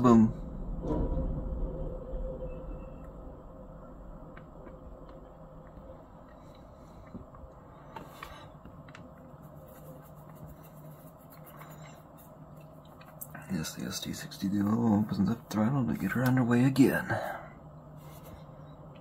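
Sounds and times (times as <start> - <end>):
diesel locomotive drone: 0.0 - 9.6.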